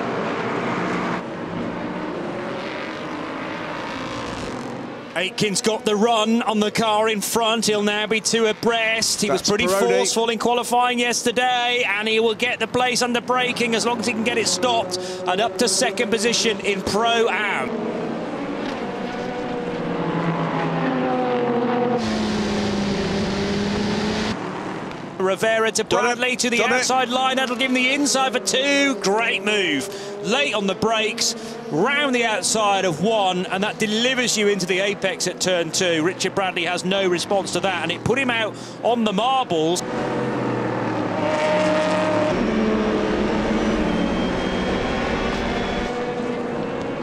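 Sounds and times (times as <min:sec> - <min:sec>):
race car engines droning: 0:00.0 - 0:47.0
wind and road noise: 0:00.0 - 0:47.0.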